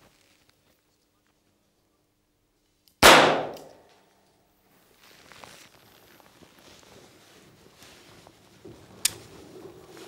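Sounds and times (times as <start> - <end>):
revolver shot: 3.0 - 3.8.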